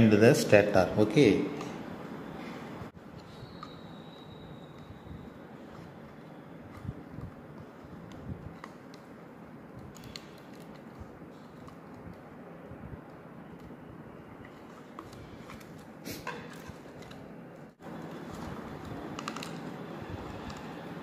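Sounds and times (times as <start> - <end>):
room noise: 0.0 - 21.0.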